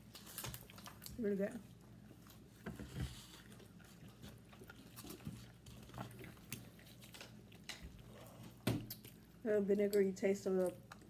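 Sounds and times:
people chewing fried chicken: 0:00.0 - 0:09.4.

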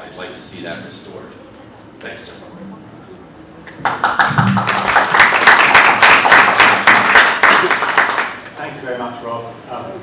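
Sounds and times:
audience applauding: 0:03.7 - 0:08.5.

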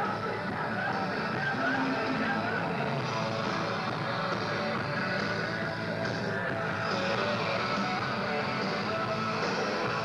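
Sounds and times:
amplified rock band playing: 0:00.0 - 0:10.0
crowd voices and shouting: 0:00.0 - 0:10.0.

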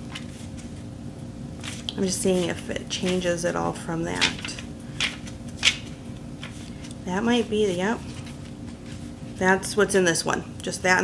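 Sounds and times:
paper pages flipping: 0:00.0 - 0:00.8, 0:01.6 - 0:03.3, 0:04.2 - 0:09.4.

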